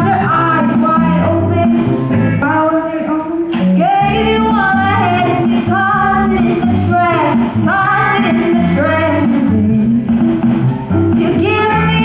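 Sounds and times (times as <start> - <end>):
woman singing into a microphone: 0.0 - 10.2, 11.1 - 12.0
drums: 0.0 - 12.0
electric guitar: 0.0 - 12.0
keyboard: 0.0 - 12.0.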